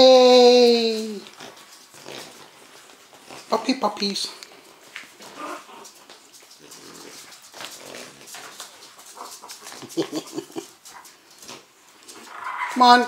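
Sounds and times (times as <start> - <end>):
puppies making small calls: 5.2 - 13.0.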